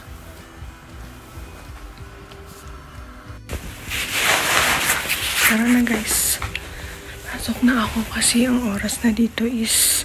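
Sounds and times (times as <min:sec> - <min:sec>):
soft background music: 0:00.0 - 0:10.0
fabric rustling on microphone: 0:03.5 - 0:10.0.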